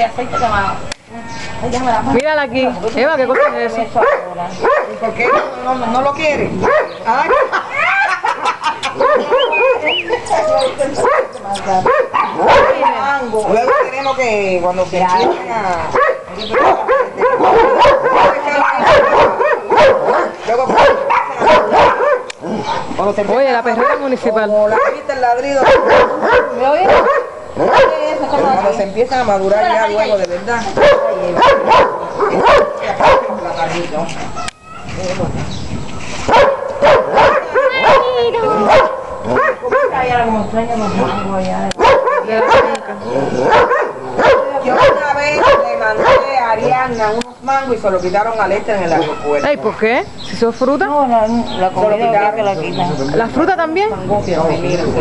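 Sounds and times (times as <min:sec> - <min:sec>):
dog barking: 0:03.3 - 0:05.6, 0:06.6 - 0:09.9, 0:11.0 - 0:14.0, 0:15.1 - 0:22.9, 0:23.7 - 0:28.2, 0:30.8 - 0:33.4, 0:36.3 - 0:40.1, 0:40.8 - 0:42.8, 0:43.4 - 0:46.5.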